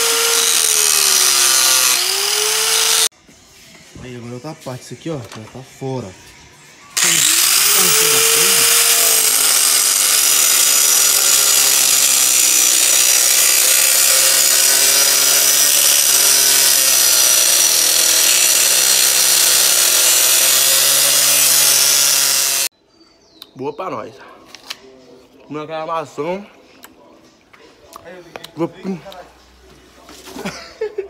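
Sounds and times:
angle grinder cutting metal: 0:00.0 - 0:03.1, 0:07.0 - 0:22.7.

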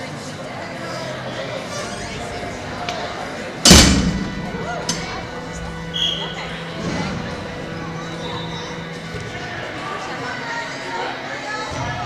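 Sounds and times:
loud echoing thump: 0:03.6 - 0:05.9.

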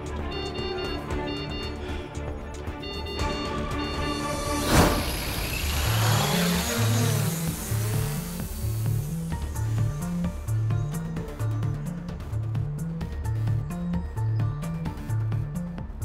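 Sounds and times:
dramatic soundtrack music: 0:00.0 - 0:16.0
sharp hit with whoosh: 0:04.6 - 0:06.1.

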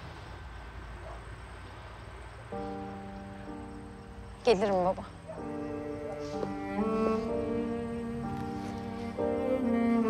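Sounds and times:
cello: 0:05.4 - 0:10.0
slow bowed strings: 0:05.4 - 0:10.0.

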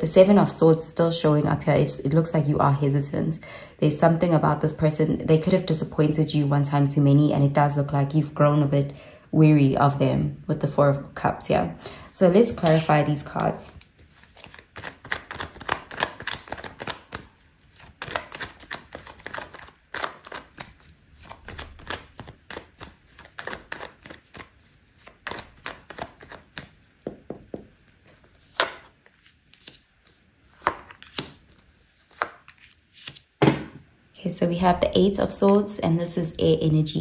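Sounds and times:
cards being shuffled: 0:12.4 - 0:33.8.

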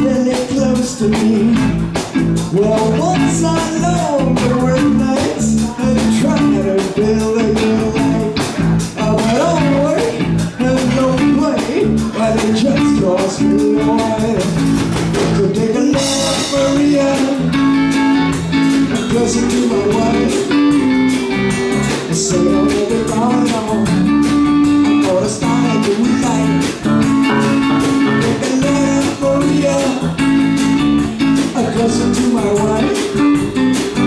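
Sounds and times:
bass guitar: 0:00.0 - 0:34.0
drum kit beat: 0:00.0 - 0:34.0
electric guitar: 0:00.0 - 0:34.0.

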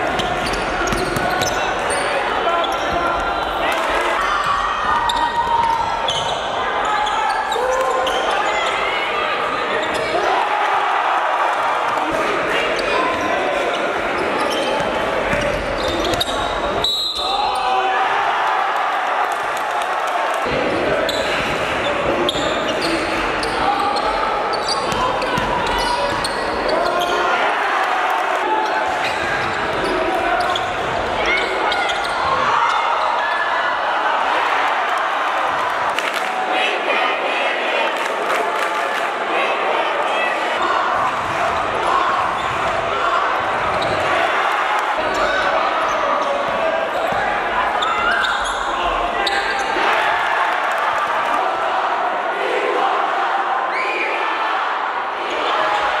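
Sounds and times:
crowd voices: 0:00.0 - 0:56.0
players shouting: 0:00.0 - 0:56.0
spectators calling out and cheering: 0:00.0 - 0:56.0
basketball bouncing on court: 0:00.1 - 0:01.6, 0:24.8 - 0:26.4, 0:41.0 - 0:41.6
shoes squeaking on hardwood court: 0:00.2 - 0:03.0, 0:13.8 - 0:17.1, 0:22.3 - 0:27.1, 0:47.8 - 0:49.6
basketball bouncing: 0:24.9 - 0:26.2.

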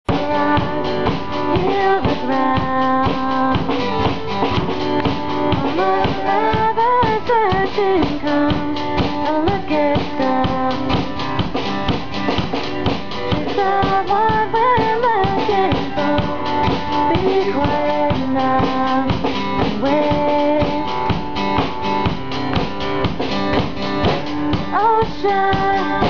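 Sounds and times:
drum kit beat: 0:00.1 - 0:26.0
strummed acoustic guitar: 0:00.1 - 0:26.0.

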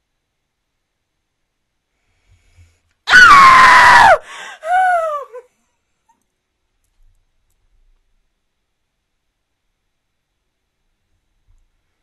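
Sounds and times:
high-pitched human scream: 0:03.1 - 0:05.4
shorter falling cry: 0:03.1 - 0:05.4.

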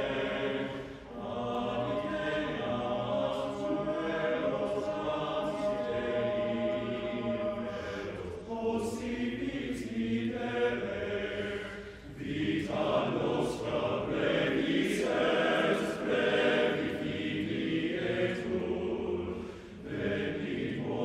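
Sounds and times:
men's chorus singing a cappella: 0:00.0 - 0:21.0.

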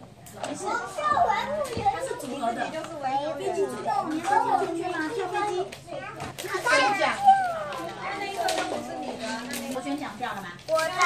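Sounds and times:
young children chattering: 0:00.0 - 0:11.0.

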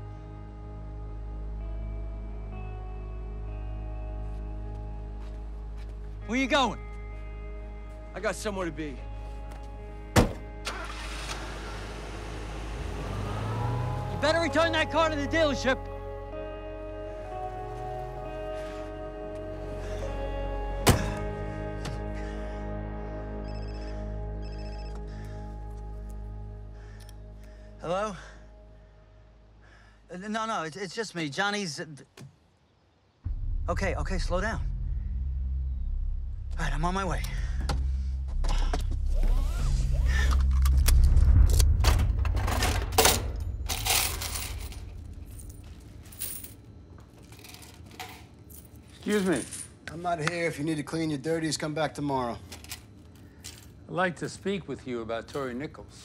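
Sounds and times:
background music: 0:00.0 - 0:29.8
mobile phone ringing: 0:23.4 - 0:25.1
low steady rumble: 0:33.3 - 0:47.5
small metal objects clinking: 0:43.6 - 0:49.7.

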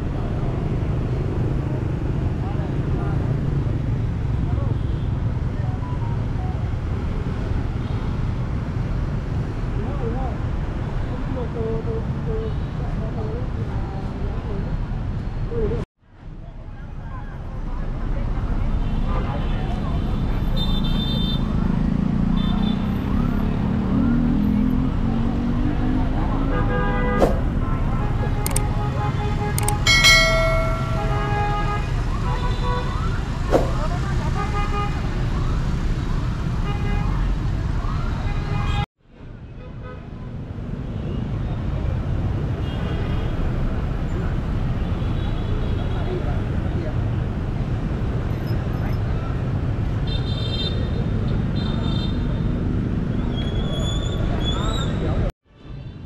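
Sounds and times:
motorbikes and cars passing: 0:00.0 - 0:38.8, 0:40.0 - 0:56.0
vehicle horn honking: 0:28.0 - 0:32.8.

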